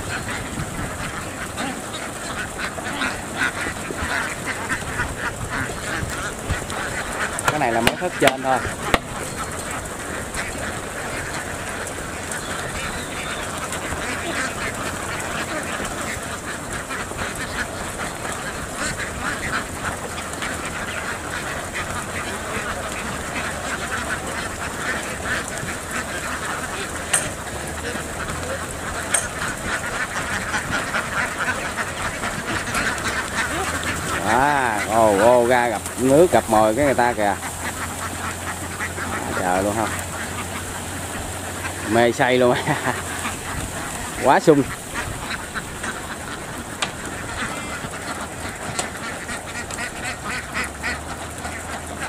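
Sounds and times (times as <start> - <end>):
flock of ducks quacking: 0.0 - 52.0.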